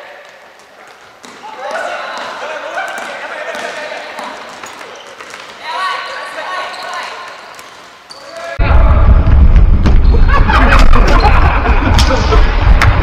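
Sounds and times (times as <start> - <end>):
loud low rumble: 8.6 - 13.0.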